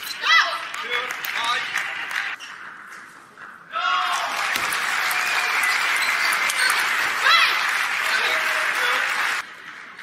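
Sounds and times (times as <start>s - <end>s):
crowd applauding and cheering: 0.4s - 2.4s, 4.0s - 10.0s.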